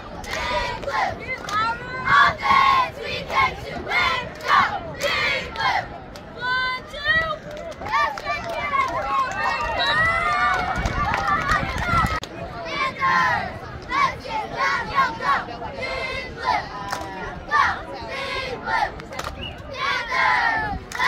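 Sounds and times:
many voices yelling and cheering: 0.0 - 21.0
girls chanting a cheer: 10.8 - 19.0, 19.6 - 21.0.

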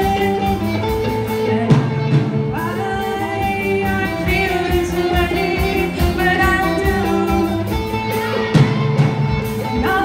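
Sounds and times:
girl singing lead: 0.0 - 10.0
live rock band playing: 0.0 - 10.0.

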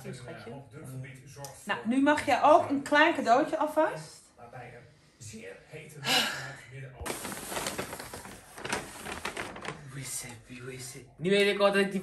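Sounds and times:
packaging and fabric rustling: 7.0 - 10.3.

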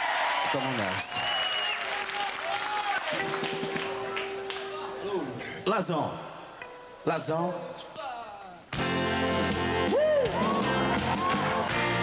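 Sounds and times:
audience applauding and cheering: 0.0 - 5.0, 9.7 - 12.0
shrill whistle: 0.6 - 1.9.

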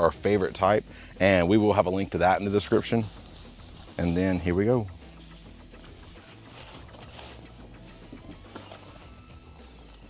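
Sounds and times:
light rustling of case: 5.8 - 10.0.

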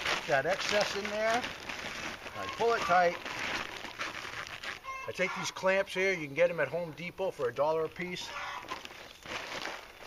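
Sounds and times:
plastic sheeting crinkling: 0.0 - 5.6, 8.5 - 10.0.

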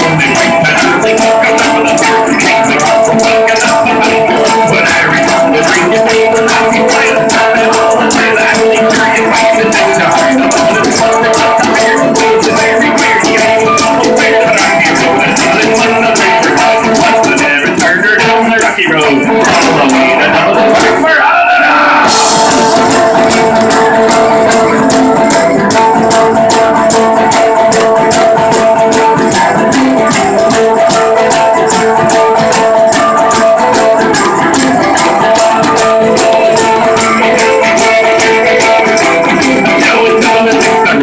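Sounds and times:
rattling hand percussion: 0.0 - 21.2, 22.0 - 41.0
folk band playing: 0.0 - 41.0.

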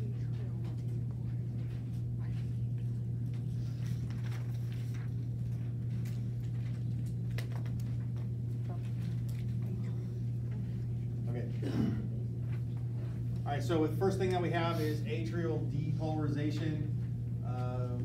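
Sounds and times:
low room hum: 0.0 - 18.0.

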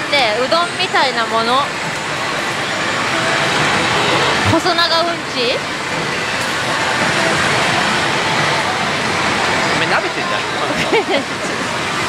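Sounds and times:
din of many gaming machines: 0.0 - 12.0.

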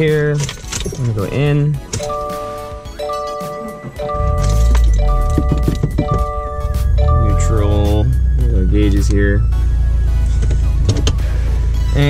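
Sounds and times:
repeating chord-like tone: 2.1 - 10.8
car engine starting and idling: 4.0 - 12.0.

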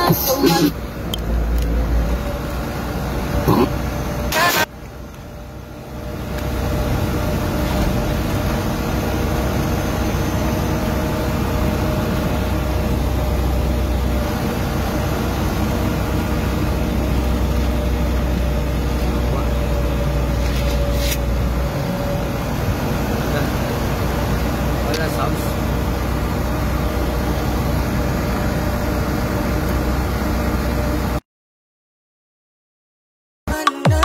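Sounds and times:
road rumble: 0.0 - 31.2
vehicle engine drone: 0.0 - 31.2.

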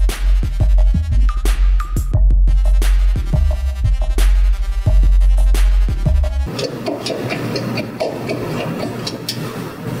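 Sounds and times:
electronic music with deep bass beat: 0.0 - 9.3.

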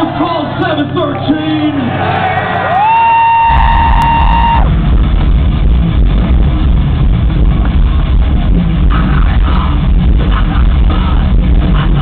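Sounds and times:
band with heavy bass and drums: 2.5 - 12.0.

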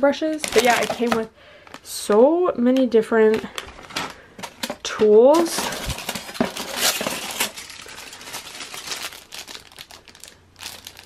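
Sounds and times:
aluminium foil crinkling: 0.3 - 1.8, 3.4 - 11.0.

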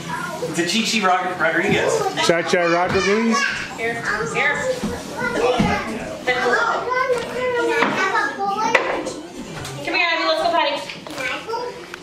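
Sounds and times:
children babbling and chattering: 0.0 - 0.7, 1.3 - 12.0.

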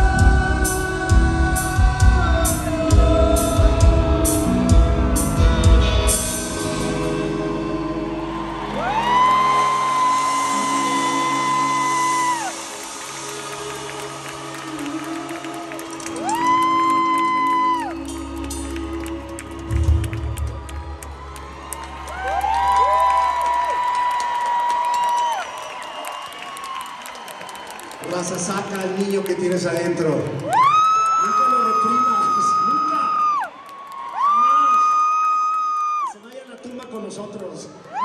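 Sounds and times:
rock band playing live: 0.0 - 16.5.

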